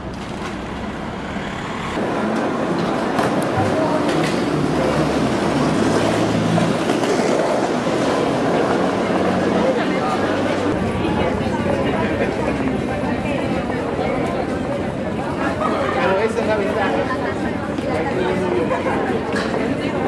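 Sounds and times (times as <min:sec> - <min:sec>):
traffic hum: 0:00.0 - 0:15.7.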